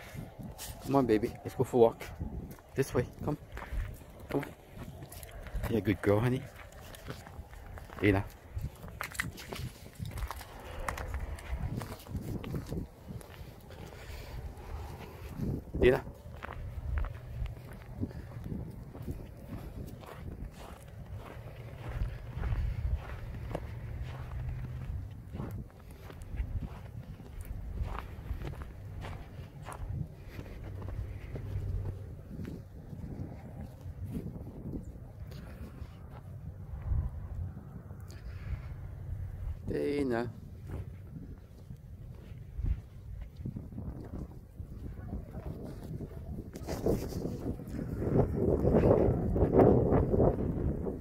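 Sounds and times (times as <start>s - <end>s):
footsteps crunching on snow: 0.0s - 37.0s, 38.2s - 51.0s
wind buffeting microphone: 0.0s - 51.0s.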